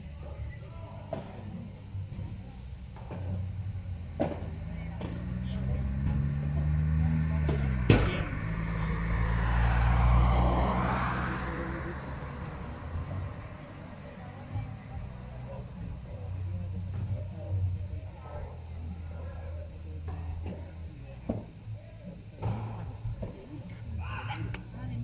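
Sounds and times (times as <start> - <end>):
vehicle passing: 3.8 - 17.5.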